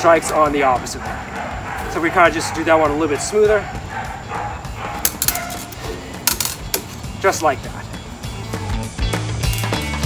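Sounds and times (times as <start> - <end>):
steel blades clicking: 4.9 - 7.1.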